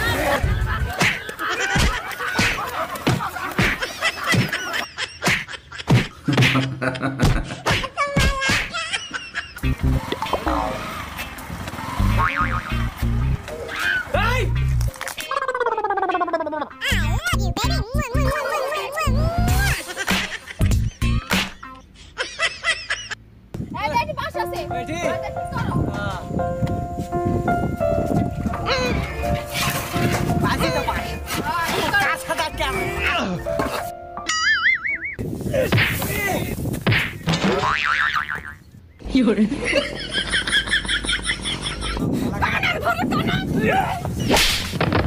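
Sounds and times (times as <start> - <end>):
cartoon boing sound effect: 12.1 - 12.8.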